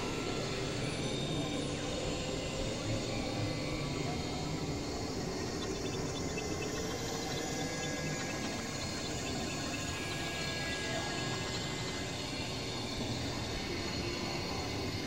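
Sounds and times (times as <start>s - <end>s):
noise music drones: 0.0s - 15.0s
faint flickering high tones: 5.0s - 12.2s.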